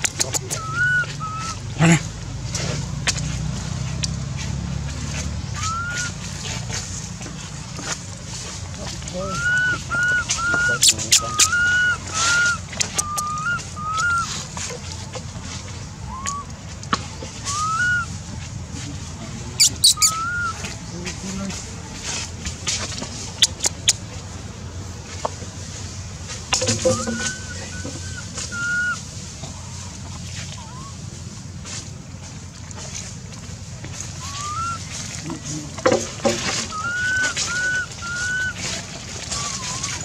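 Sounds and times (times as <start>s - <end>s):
monkey coo calls: 0.0s - 2.1s, 5.5s - 6.6s, 9.1s - 14.5s, 16.0s - 16.5s, 17.4s - 18.1s, 19.6s - 20.9s, 26.6s - 29.8s, 30.6s - 31.1s, 34.1s - 40.0s.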